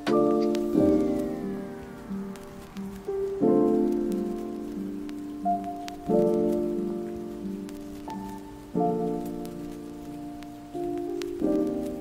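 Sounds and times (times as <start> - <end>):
crackling rain-like texture: 0.0 - 12.0
mellow keyboard chords: 0.0 - 12.0.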